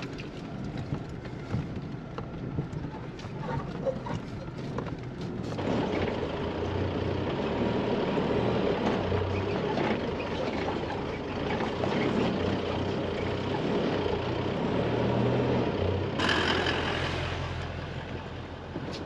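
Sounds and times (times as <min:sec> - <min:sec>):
vehicle engine drone: 0:00.0 - 0:19.0
vehicle driving past through sand: 0:13.4 - 0:18.3.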